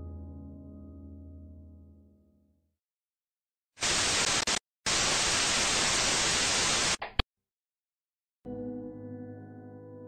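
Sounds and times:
tv static hiss: 3.8s - 7.0s.

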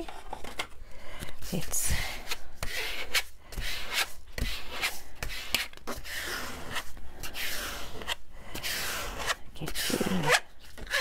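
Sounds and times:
plastic card scraping paper: 1.6s - 11.0s.

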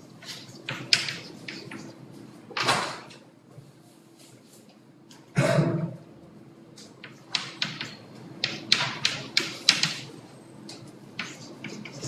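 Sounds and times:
chalk tapping and scratching: 0.2s - 2.0s, 7.0s - 10.1s, 11.1s - 12.0s.

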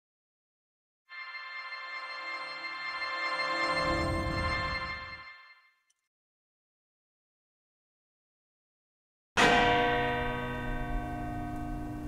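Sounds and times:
clock bell ringing: 1.1s - 5.7s, 9.4s - 12.0s.

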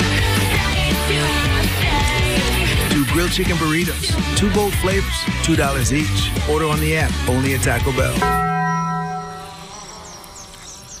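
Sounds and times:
bell-like tone: 8.2s - 9.9s
faint high buzz: 8.8s - 11.0s.

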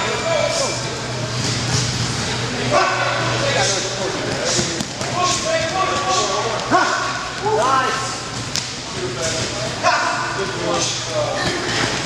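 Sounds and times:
steady low hum: 0.0s - 12.0s
men shouting: 2.6s - 4.0s, 5.1s - 8.1s, 9.8s - 11.1s.

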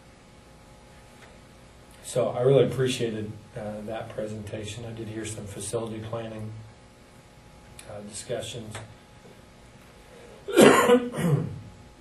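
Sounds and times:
man coughing: 10.4s - 11.7s.

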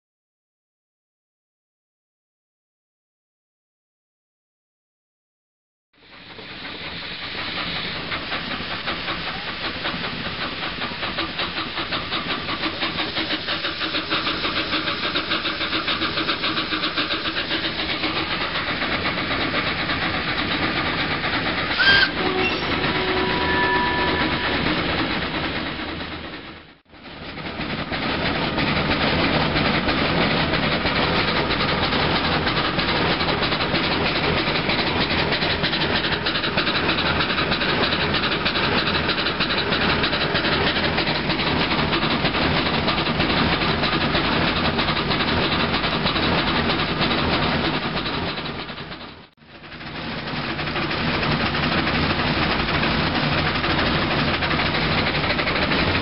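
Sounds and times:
steam hissing: 6.0s - 56.0s
steam locomotive beat: 6.0s - 56.0s.

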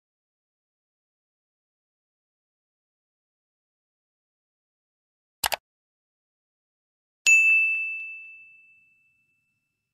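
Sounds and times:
bright bell ding: 7.3s - 9.9s.

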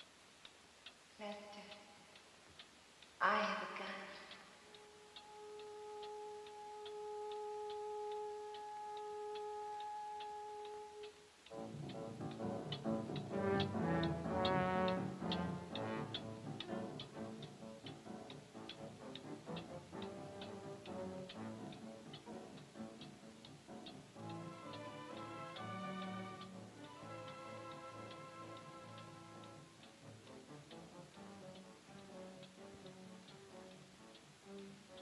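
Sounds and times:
pendulum clock ticking: 0.0s - 35.0s
orchestral music with brass: 4.9s - 23.1s, 23.8s - 35.0s.

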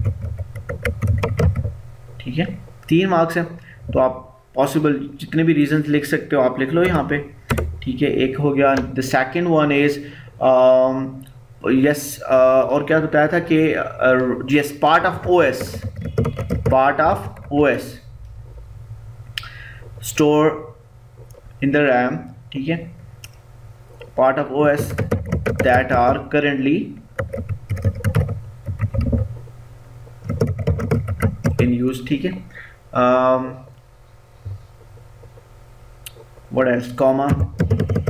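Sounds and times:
computer keyboard typing: 0.0s - 1.7s, 15.1s - 17.6s, 24.7s - 26.3s, 27.2s - 29.3s, 30.2s - 31.7s, 37.3s - 38.0s
low steady hum: 0.0s - 38.0s.

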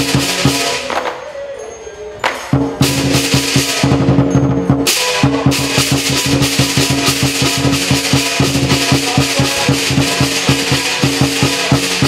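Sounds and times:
large drum beaten fast: 0.0s - 0.8s, 2.5s - 12.0s
cymbals clashing: 0.0s - 12.0s.

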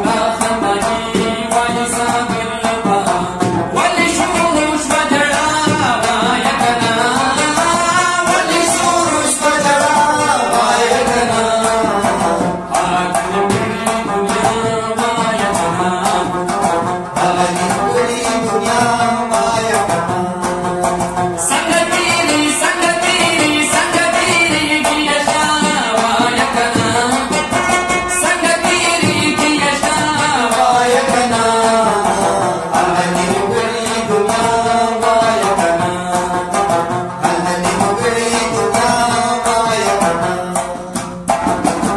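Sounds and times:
man singing folk song: 0.0s - 41.0s
clay-pot drum beat: 0.0s - 41.9s
rabab plucked quickly: 0.0s - 41.9s.

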